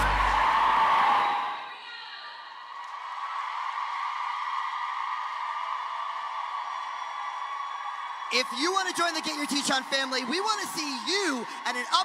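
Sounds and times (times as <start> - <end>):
music: 0.0 - 0.6
crowd cheering and shouting: 0.0 - 12.0.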